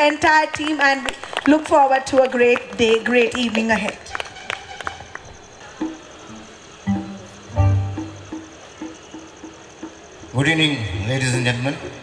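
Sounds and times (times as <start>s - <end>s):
short soft musical notes: 6.8s - 8.6s.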